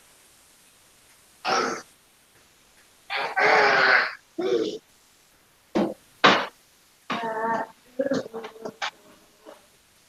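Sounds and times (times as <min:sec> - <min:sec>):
person vocalizing: 0:03.1 - 0:04.8, 0:07.1 - 0:09.0.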